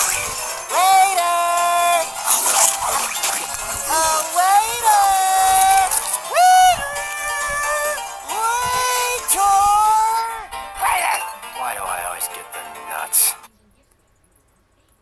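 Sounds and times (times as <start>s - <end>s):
background music: 0.0s - 13.5s
cartoon voices whooping: 3.9s - 10.4s.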